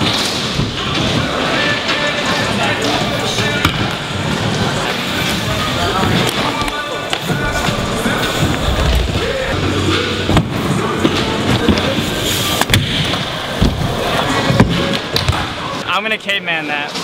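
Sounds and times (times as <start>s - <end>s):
bike tyres rolling on ramps: 4.1s - 15.8s.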